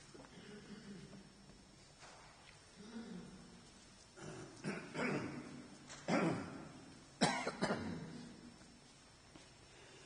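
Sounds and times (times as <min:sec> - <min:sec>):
person coughing: 0:04.2 - 0:08.3.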